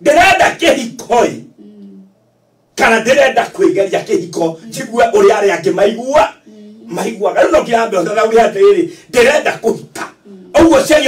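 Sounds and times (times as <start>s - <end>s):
person speaking: 2.8s - 11.0s.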